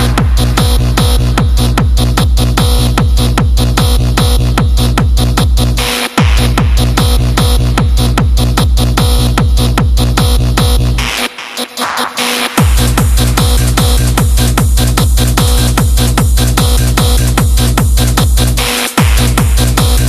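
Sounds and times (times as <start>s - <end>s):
heavy kick drum beat: 0.0s - 11.3s, 12.4s - 20.0s.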